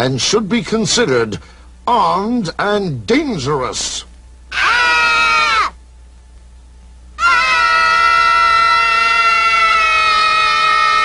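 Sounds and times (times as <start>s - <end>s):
children screaming: 4.5s - 5.8s, 7.2s - 11.0s.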